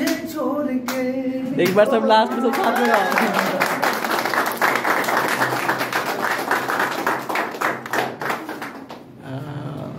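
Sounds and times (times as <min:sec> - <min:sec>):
people applauding: 0:01.6 - 0:09.2.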